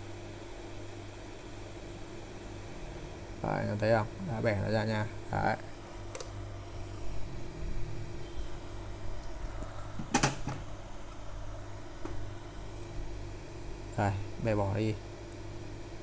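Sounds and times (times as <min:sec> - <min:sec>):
low hum: 0:01.1 - 0:16.0.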